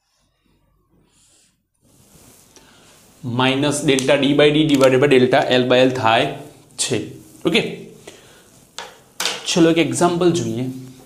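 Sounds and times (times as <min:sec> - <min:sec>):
marker strokes on whiteboard: 0:00.9 - 0:06.6.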